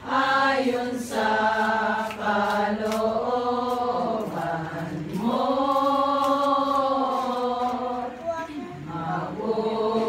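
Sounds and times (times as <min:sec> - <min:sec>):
women singing a slow hymn: 0:00.0 - 0:10.0.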